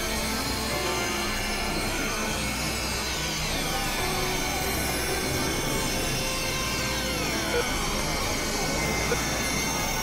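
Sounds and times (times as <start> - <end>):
experimental electronic noise: 0.0 - 10.0
high sustained tones: 0.0 - 10.0
steady drones: 0.0 - 10.0.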